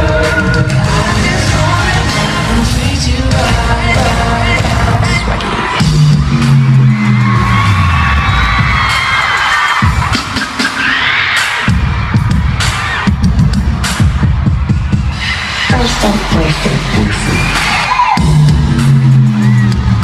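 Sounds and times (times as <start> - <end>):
crowd screaming: 0.0 - 1.3, 4.0 - 20.0
pulsing bass beat: 0.0 - 9.0, 11.7 - 20.0.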